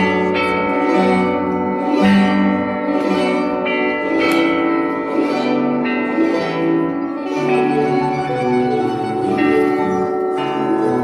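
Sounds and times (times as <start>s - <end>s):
plucked string ensemble: 0.0s - 11.0s.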